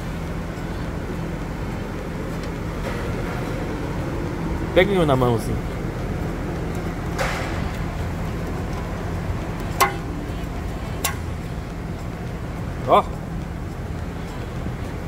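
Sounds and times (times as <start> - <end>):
machinery hum: 0.0 - 15.0.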